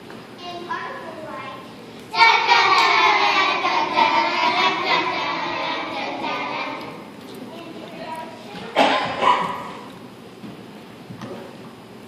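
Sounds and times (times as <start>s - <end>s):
child barking like a dog: 8.8s - 9.8s.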